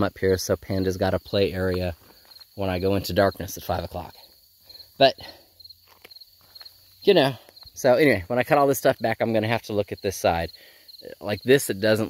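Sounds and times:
person speaking: 0.0s - 4.3s, 4.9s - 5.5s, 7.0s - 12.0s
crickets chirping: 0.0s - 12.0s.

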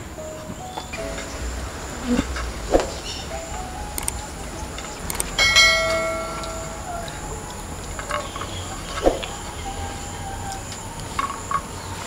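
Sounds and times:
bell chime: 3.2s - 7.6s
mouse clicks: 4.0s - 4.2s.

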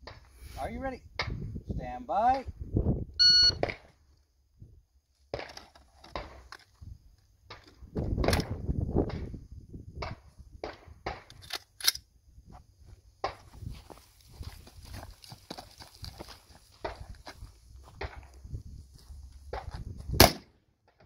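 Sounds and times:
shot timer beep: 3.2s - 3.6s
clicks and knocks of handling gun: 5.2s - 9.3s, 10.0s - 12.1s.

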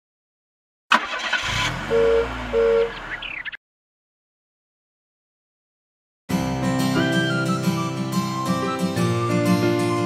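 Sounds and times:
cartoon car engine starting: 0.9s - 3.6s
car horn beep: 1.7s - 3.0s.

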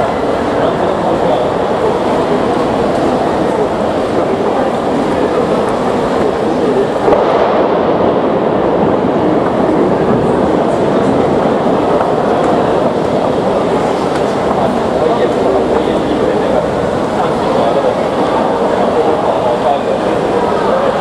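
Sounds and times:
heavy rain pouring: 0.0s - 21.0s.

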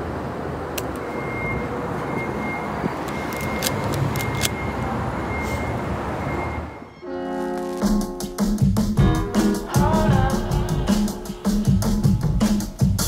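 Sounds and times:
cars rumbling on road: 0.0s - 8.3s.

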